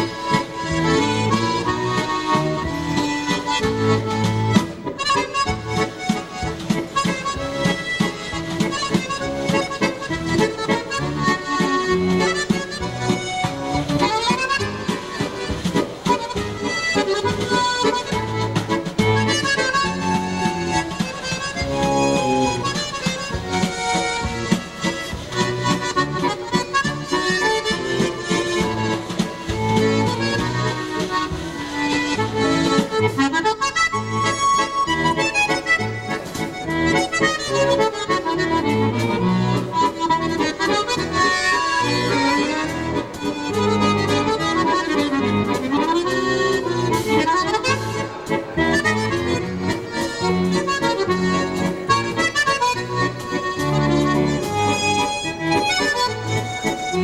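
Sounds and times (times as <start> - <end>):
accordion playing a waltz: 0.0 - 57.0.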